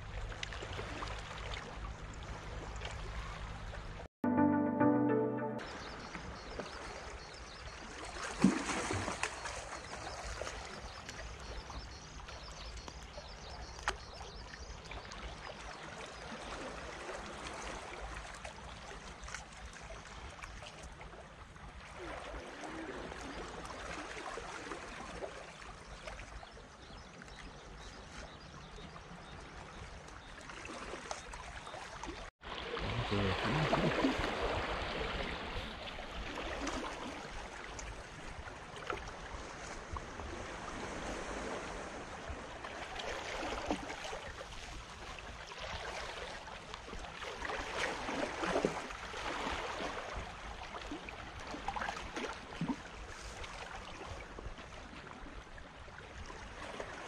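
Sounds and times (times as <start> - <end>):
small waves lapping on rocks: 0.0 - 4.1, 6.6 - 57.0.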